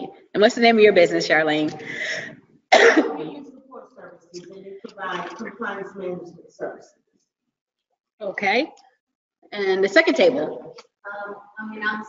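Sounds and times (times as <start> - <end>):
person clearing throat: 2.7 - 5.8.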